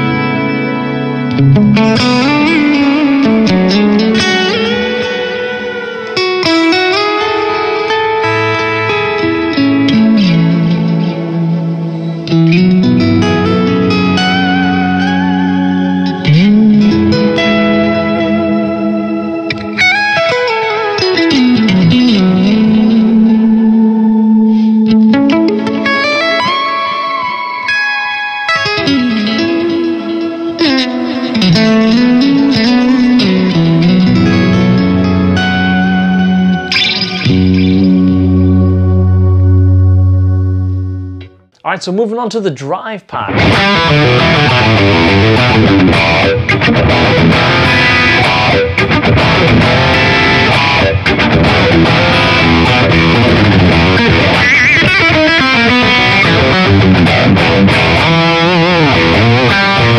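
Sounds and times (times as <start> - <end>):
electric guitar with shimmering reverb: 0.0 - 41.6, 43.2 - 59.9.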